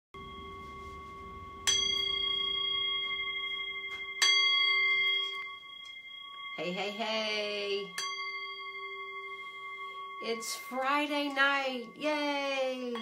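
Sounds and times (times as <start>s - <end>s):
bell-like metal instrument ringing: 0.2s - 13.0s.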